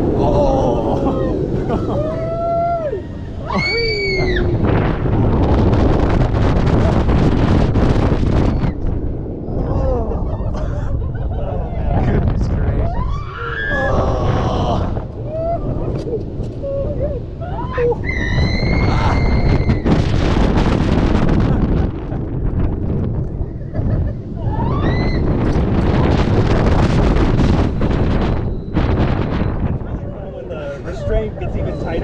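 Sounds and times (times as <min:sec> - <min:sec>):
wind rushing over microphone: 0:00.0 - 0:32.0
riders screaming and yelling: 0:00.1 - 0:04.6, 0:12.8 - 0:20.0, 0:24.4 - 0:26.2.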